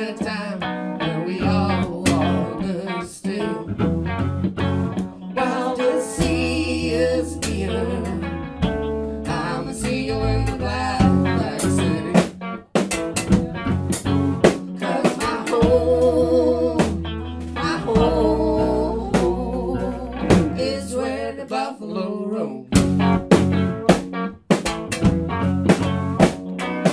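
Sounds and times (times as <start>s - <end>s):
person singing: 0.0s - 4.0s, 5.3s - 8.4s, 9.2s - 12.3s, 14.8s - 22.8s
guitars: 0.0s - 26.9s
drum kit: 1.4s - 2.6s, 3.8s - 20.9s, 22.7s - 26.9s.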